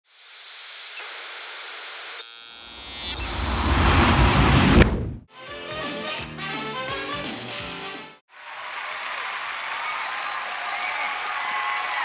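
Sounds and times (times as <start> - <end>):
deep rumble: 2.9 - 5.3.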